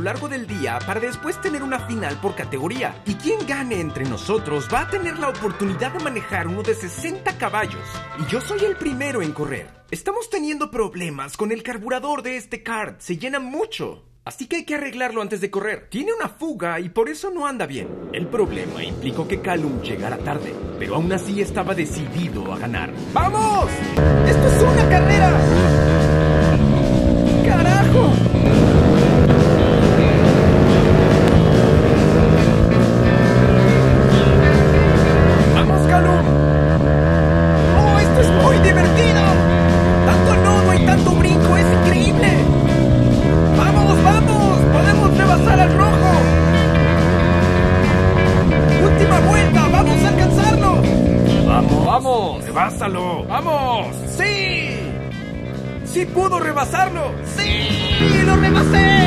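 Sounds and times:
background music: 0.0s - 11.4s, 16.8s - 59.0s
kart engine revving: 17.8s - 22.3s, 23.8s - 59.0s.

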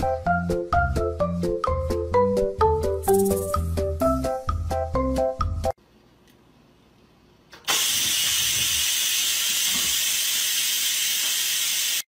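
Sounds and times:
rice cooker steam hissing: 7.6s - 12.0s.

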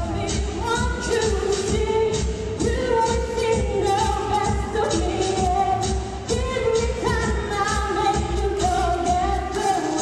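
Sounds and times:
backing track with steady beat: 0.0s - 10.0s
person singing pop song: 0.0s - 10.0s.

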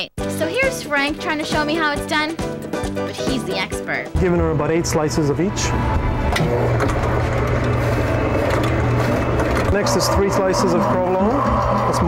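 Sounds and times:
meat slicer humming: 4.2s - 12.0s.

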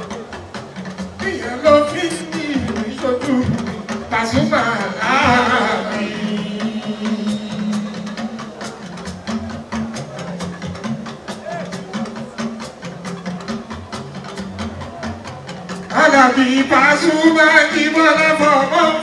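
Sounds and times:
live band instrumental: 0.0s - 19.0s.

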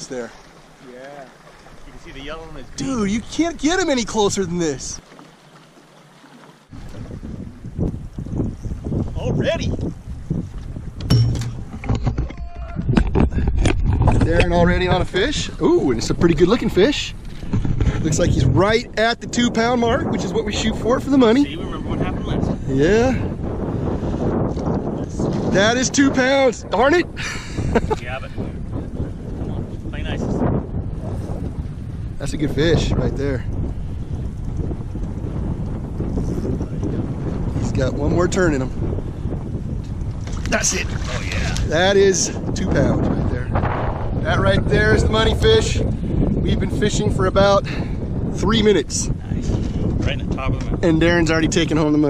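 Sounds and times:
wind and water rumble: 0.0s - 52.0s
camera handling knocks: 11.0s - 14.5s.

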